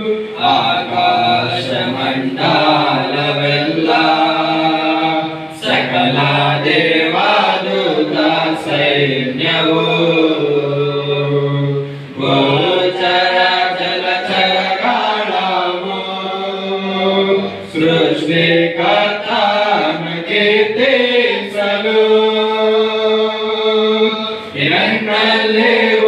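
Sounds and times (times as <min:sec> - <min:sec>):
men singing together: 0:00.0 - 0:26.0.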